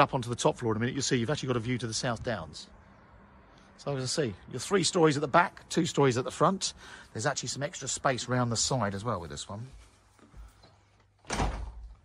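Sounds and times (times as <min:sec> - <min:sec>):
door pulled shut: 0:11.2 - 0:12.0.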